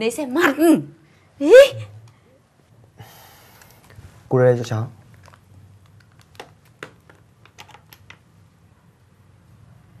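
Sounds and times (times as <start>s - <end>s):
computer keyboard keystrokes: 5.2s - 8.2s.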